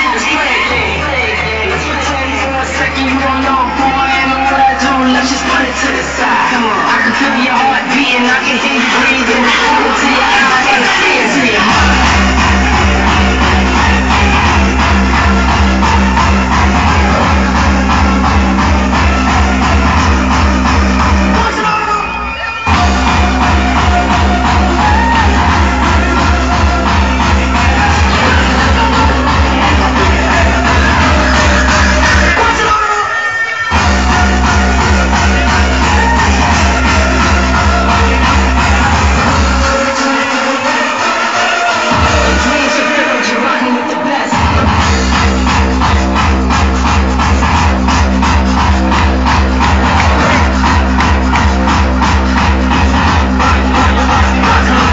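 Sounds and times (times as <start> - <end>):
heavy kick-drum beat: 0.0 - 21.7, 22.7 - 32.8, 33.7 - 43.4, 44.0 - 54.9
hardstyle dance music: 0.0 - 54.9.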